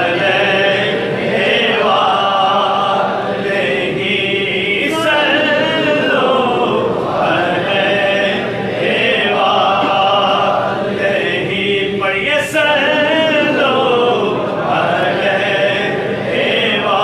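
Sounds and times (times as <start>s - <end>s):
men chanting together: 0.0s - 17.0s.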